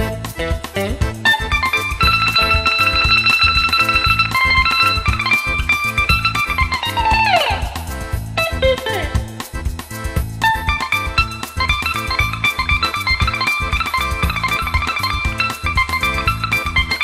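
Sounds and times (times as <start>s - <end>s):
bouzouki tremolo picking: 0.0s - 17.0s
steady low beat: 0.0s - 17.0s.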